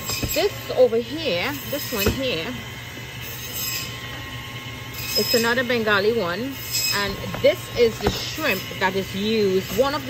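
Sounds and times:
grocery store hum: 0.0 - 10.0.

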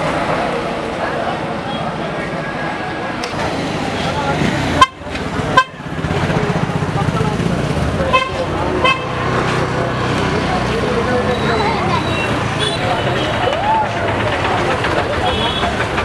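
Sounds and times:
street crowd chatter: 0.0 - 16.0.

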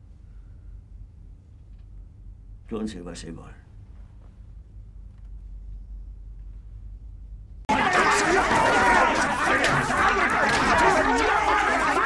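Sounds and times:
men shouting and talking: 7.7 - 12.0.

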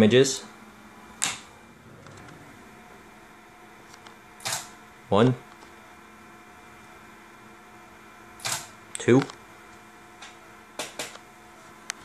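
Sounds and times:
camera shutter and mirror firing: 4.4 - 4.7, 8.4 - 8.7.

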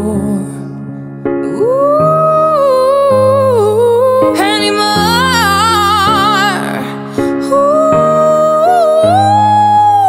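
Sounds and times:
woman singing: 0.0 - 0.8, 1.4 - 10.0
grand piano chords: 0.0 - 10.0.

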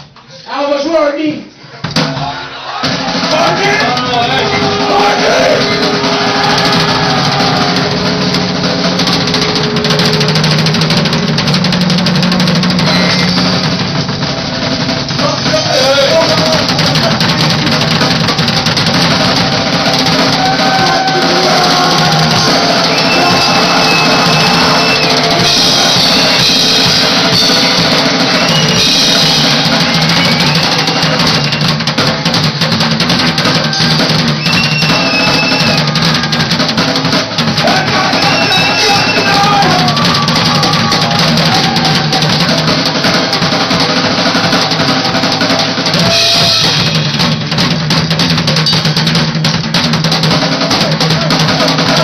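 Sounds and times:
drum and cymbal hits: 1.9 - 52.0
punk rock band playing live: 2.0 - 52.0.

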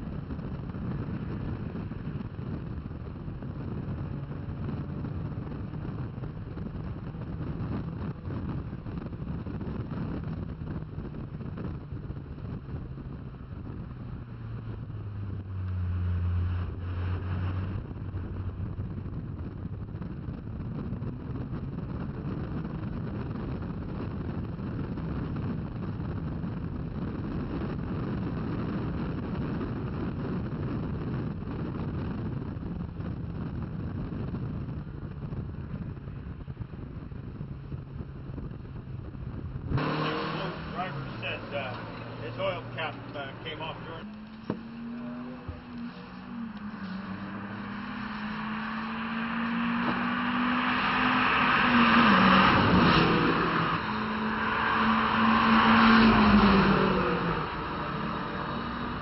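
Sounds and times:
car engine running at speed: 0.0 - 59.0
wind rush: 0.0 - 59.0
racing cars passing: 39.8 - 59.0.

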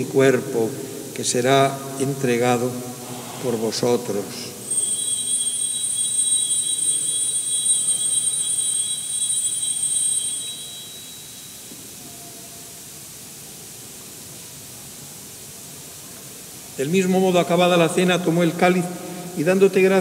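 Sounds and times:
small altar bell ringing: 4.7 - 12.8.

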